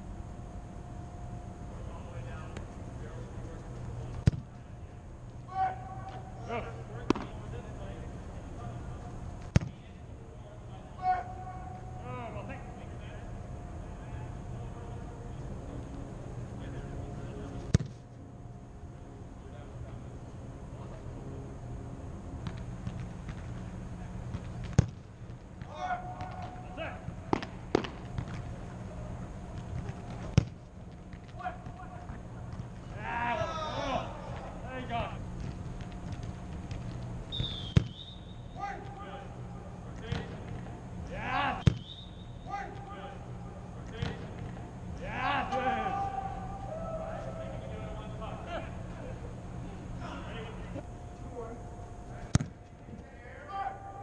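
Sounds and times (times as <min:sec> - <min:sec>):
steady low hum: 0:00.0 - 0:54.0
soccer ball kicks echoing: 0:04.2 - 0:04.6, 0:07.0 - 0:07.4, 0:09.4 - 0:09.8, 0:17.7 - 0:18.1, 0:24.3 - 0:26.7, 0:27.3 - 0:28.6, 0:29.5 - 0:33.5, 0:35.4 - 0:39.0, 0:41.5 - 0:42.0, 0:52.2 - 0:52.7
voices calling out: 0:31.3 - 0:35.4, 0:37.3 - 0:50.9.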